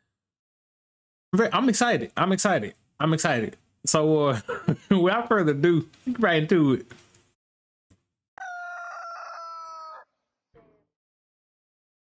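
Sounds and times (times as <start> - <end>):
long bird crow: 8.4 - 10.8.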